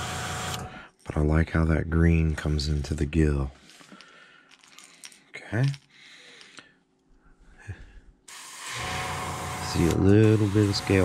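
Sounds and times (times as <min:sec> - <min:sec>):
airbrush hissing: 0:08.3 - 0:11.0.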